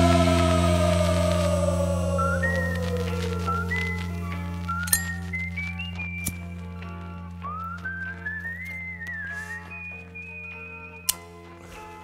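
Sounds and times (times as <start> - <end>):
steady low drone: 0.0 - 8.2
whistled melody: 0.0 - 12.0.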